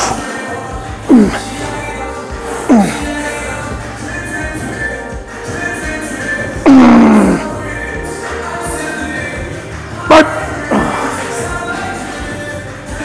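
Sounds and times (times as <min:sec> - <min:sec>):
background music: 0:00.0 - 0:13.0
man groaning: 0:01.0 - 0:01.6, 0:02.6 - 0:03.1, 0:06.6 - 0:07.6, 0:10.1 - 0:11.2
man grunting: 0:01.0 - 0:01.6, 0:02.6 - 0:03.1, 0:06.6 - 0:07.6, 0:10.1 - 0:11.2.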